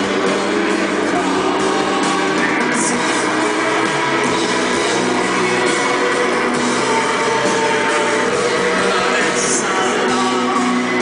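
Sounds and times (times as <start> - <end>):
drum kit: 0.0 - 11.0
electric guitar: 0.0 - 11.0
keyboards: 0.0 - 11.0.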